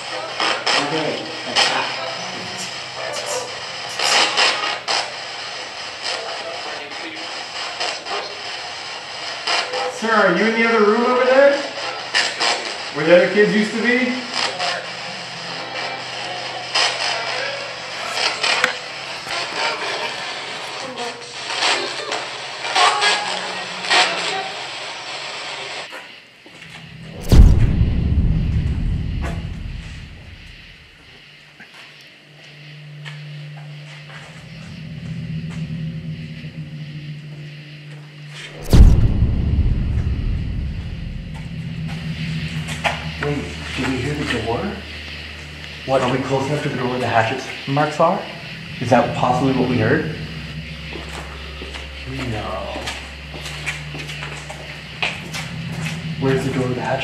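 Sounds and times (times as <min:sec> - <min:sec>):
deep cinematic booms: 0:26.9 - 0:30.9, 0:38.6 - 0:45.5, 0:48.5 - 0:56.5
low droning music: 0:34.5 - 0:46.9, 0:48.4 - 0:57.0.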